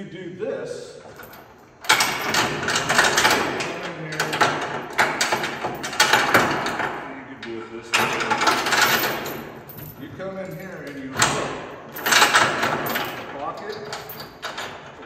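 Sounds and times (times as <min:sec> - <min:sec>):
metal chain rattling: 0:01.0 - 0:15.0.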